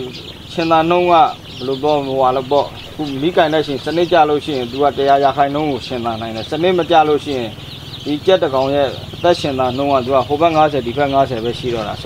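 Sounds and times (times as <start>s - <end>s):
chicks peeping: 0.0s - 12.0s.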